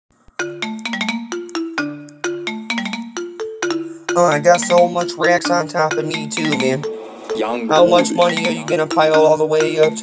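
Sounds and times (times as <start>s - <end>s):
rap backing beat: 4.0s - 10.0s.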